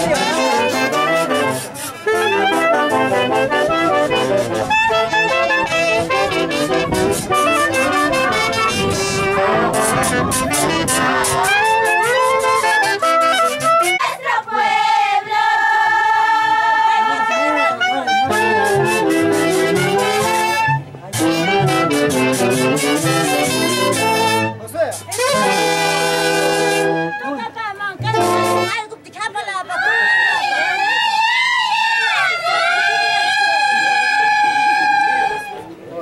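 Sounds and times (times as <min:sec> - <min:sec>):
brass band playing: 0:00.0 - 0:14.2, 0:16.9 - 0:29.1.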